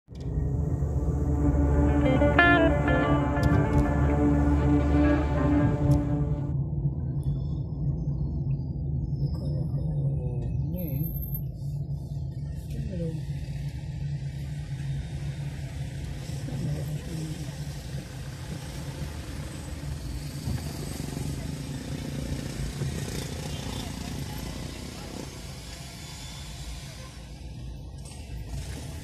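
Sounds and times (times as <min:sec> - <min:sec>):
car cabin road and wind noise: 0:00.1 - 0:25.5.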